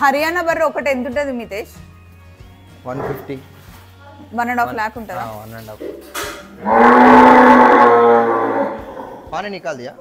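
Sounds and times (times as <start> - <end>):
water buffalo lowing: 6.5 - 9.3.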